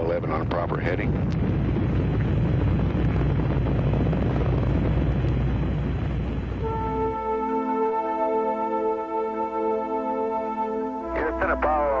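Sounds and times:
rocket engines deep rumble: 0:00.0 - 0:12.0.

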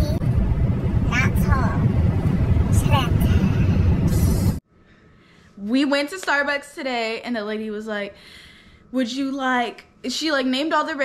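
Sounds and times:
car rumble from inside cabin: 0:00.0 - 0:04.6
woman's voice: 0:05.6 - 0:08.2, 0:08.9 - 0:11.0.

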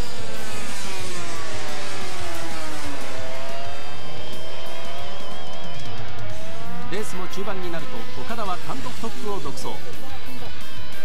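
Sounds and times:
racing motorcycle engines: 0:00.0 - 0:11.0.

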